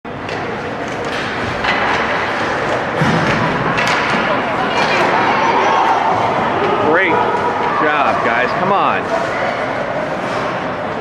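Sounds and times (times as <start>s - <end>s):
hockey sticks and puck knocking: 0.2s - 4.3s
ice skating noise: 0.2s - 11.0s.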